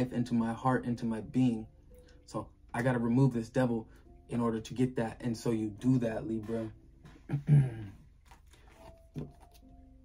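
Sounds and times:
cards clicking and rustling: 8.2s - 9.7s.

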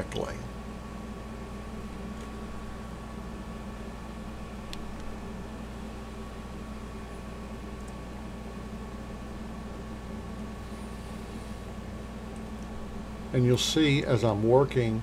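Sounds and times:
room noise hum and hiss: 0.0s - 15.0s.

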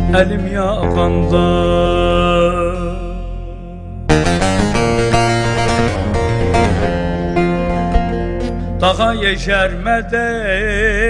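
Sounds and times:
folk song instrumental: 0.0s - 11.0s
fast plucked-string melody: 4.1s - 10.1s.

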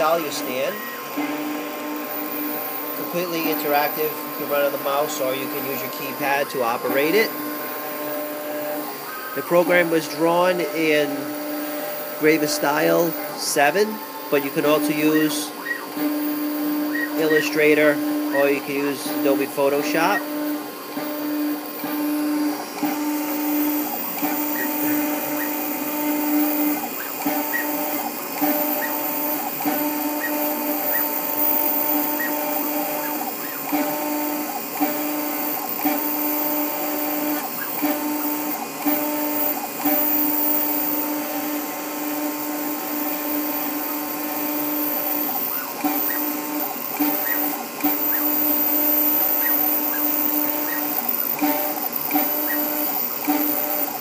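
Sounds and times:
engraving bit cutting metal: 0.0s - 54.0s
engraving machine motors humming: 0.0s - 54.0s.

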